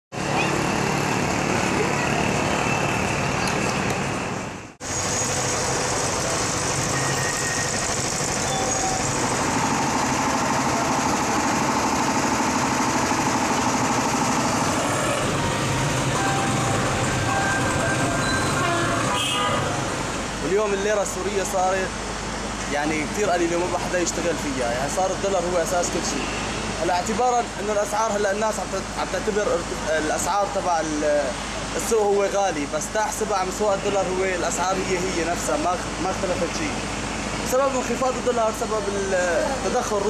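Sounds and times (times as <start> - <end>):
motor traffic: 0.1 - 40.0.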